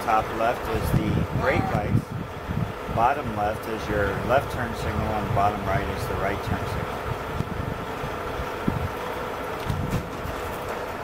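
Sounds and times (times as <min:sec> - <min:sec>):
steady background hum: 0:00.0 - 0:11.0
wind buffeting microphone: 0:00.5 - 0:10.5.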